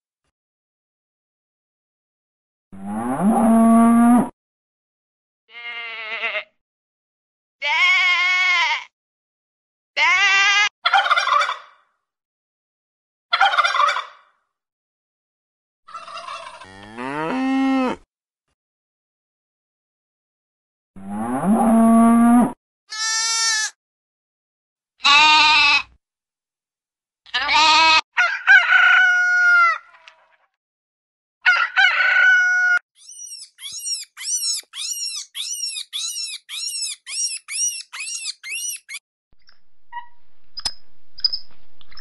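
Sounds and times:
cow mooing: 2.8s - 4.3s, 16.6s - 18.0s
animal bleating: 5.5s - 6.6s, 7.6s - 8.9s, 10.0s - 10.7s, 22.9s - 23.8s, 25.0s - 25.9s, 27.3s - 28.0s
rooster crowing: 28.2s - 29.8s, 31.4s - 32.8s
short high animal calls: 33.0s - 39.0s.

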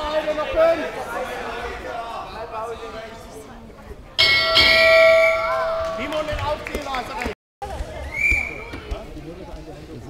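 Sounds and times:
voices of spectators: 0.0s - 10.0s
referee's whistle blast: 4.8s - 5.7s.

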